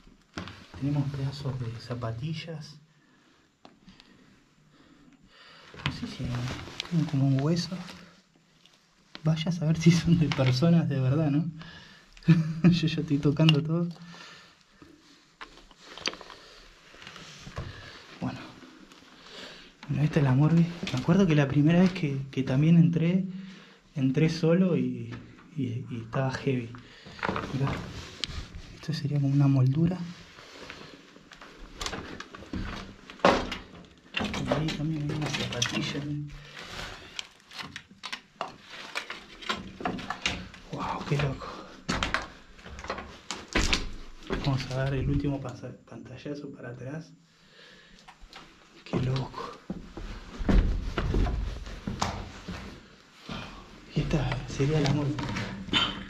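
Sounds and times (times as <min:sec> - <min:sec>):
footsteps over rubble: 0:48.2 - 0:55.9.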